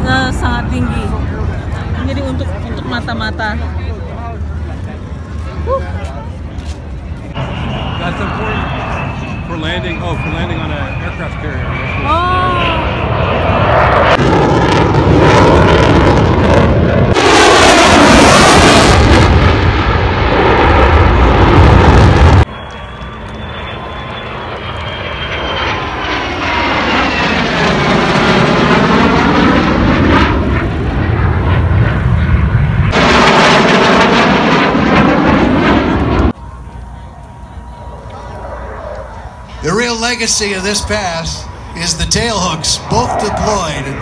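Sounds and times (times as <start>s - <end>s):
fighter jets flying past: 0.0s - 44.0s.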